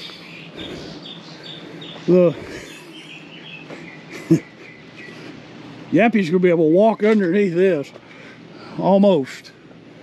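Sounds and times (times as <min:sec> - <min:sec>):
small birds chirping: 0:00.0 - 0:09.0
steady background hum: 0:00.0 - 0:10.0.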